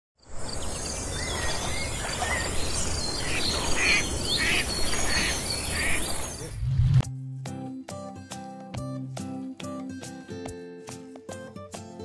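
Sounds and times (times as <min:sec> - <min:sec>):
birds chirping: 0:00.2 - 0:06.8.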